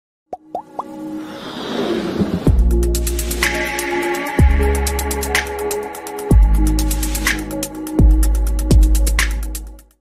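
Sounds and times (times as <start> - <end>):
electronic music: 2.3 - 9.8.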